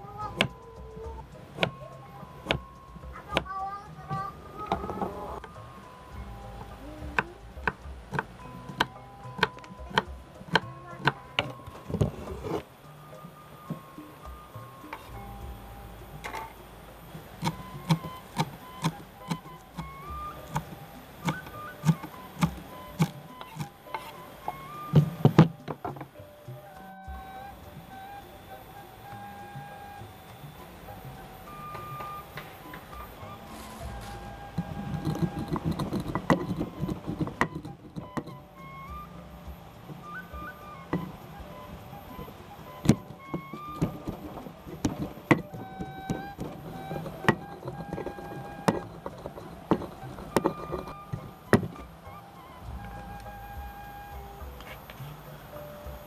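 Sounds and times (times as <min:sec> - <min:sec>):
soft background music: 0:00.0 - 0:56.0.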